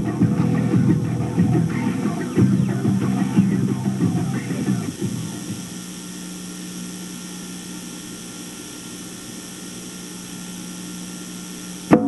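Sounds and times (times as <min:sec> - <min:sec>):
tape buzz and hiss: 0:00.0 - 0:12.0.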